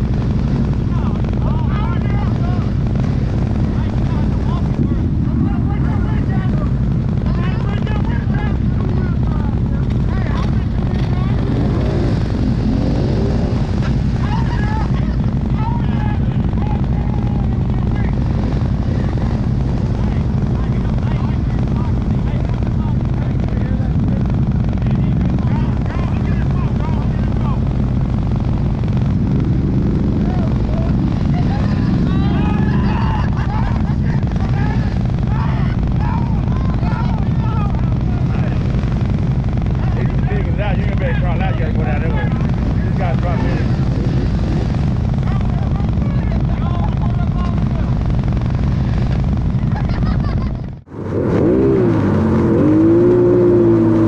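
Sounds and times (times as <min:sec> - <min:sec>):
distant voices talking: 0:00.0 - 0:50.4
atv engine idling: 0:00.0 - 0:54.0.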